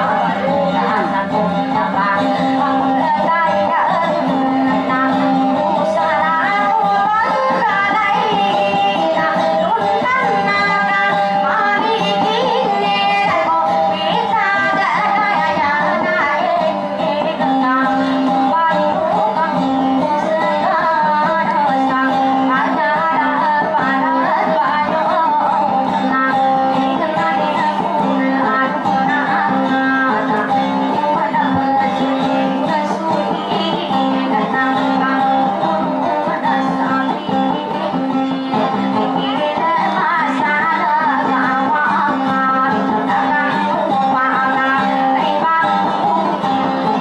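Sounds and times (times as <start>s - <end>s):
instrumental accompaniment: 0.0s - 47.0s
plucked guitar melody: 0.0s - 47.0s.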